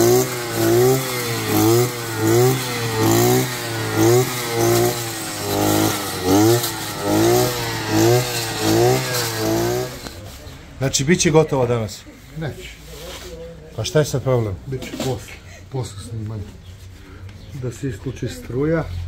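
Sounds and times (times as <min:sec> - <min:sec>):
brush cutter engine revving: 0:00.0 - 0:10.4.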